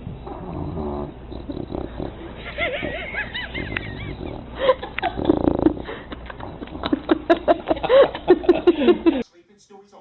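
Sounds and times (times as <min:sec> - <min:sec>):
dog snoring: 0:00.0 - 0:07.4
person laughing: 0:02.4 - 0:09.2.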